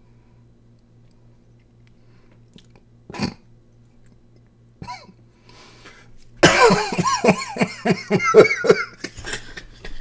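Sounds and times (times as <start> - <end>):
man laughing hard: 6.4 - 10.0.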